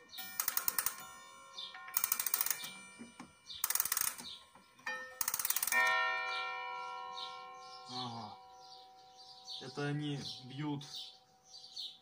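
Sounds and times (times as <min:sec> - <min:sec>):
clock movement rapid clicking: 0:00.2 - 0:01.1, 0:01.9 - 0:02.8, 0:03.6 - 0:04.4, 0:05.2 - 0:06.0.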